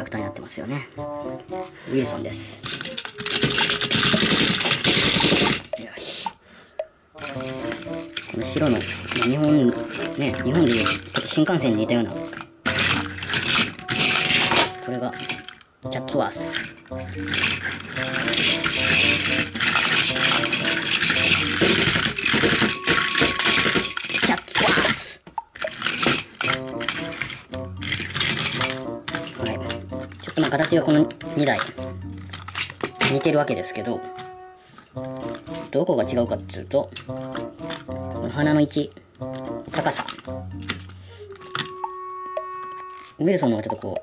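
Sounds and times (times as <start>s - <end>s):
background music: 0.0s - 24.3s, 25.4s - 44.0s
toy train motor rattling buzz: 2.6s - 5.7s, 7.2s - 11.4s, 12.2s - 15.6s, 16.4s - 24.4s, 25.6s - 32.9s.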